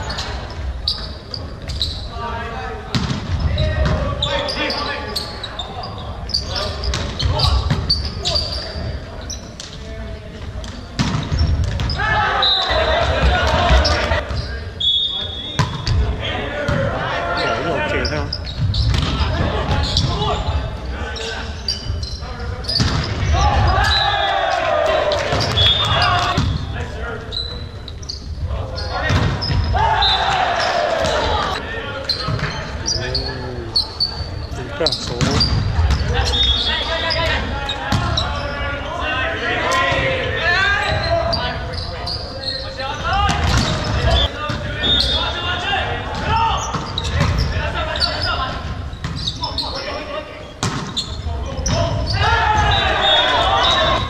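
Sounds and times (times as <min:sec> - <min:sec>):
sneakers squeaking on court: 0:00.0 - 0:02.2, 0:02.9 - 0:09.9, 0:10.8 - 0:12.0, 0:12.6 - 0:16.0, 0:16.7 - 0:24.0, 0:25.3 - 0:38.6, 0:40.8 - 0:45.4, 0:46.2 - 0:54.0
people shouting and cheering: 0:11.9 - 0:14.3, 0:23.2 - 0:26.4, 0:28.6 - 0:34.0, 0:34.6 - 0:41.5, 0:51.5 - 0:54.0.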